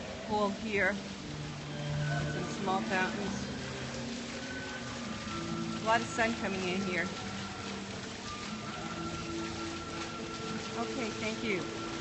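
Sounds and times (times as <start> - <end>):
fountain water splashing: 0.0 - 12.0
soft background music: 0.0 - 12.0.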